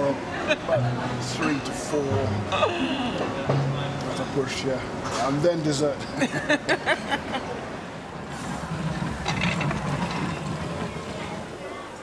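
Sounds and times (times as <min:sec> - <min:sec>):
cart wheels rolling on tiles: 0:08.3 - 0:12.0
plates rattling: 0:08.6 - 0:11.6.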